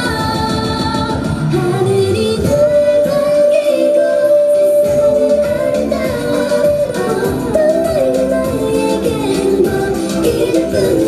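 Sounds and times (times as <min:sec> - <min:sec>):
pop song with female singing: 0:00.0 - 0:11.0.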